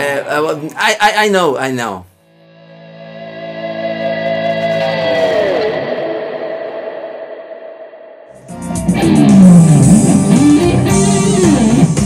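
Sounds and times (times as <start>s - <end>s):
electric guitar note ringing: 2.3s - 12.0s.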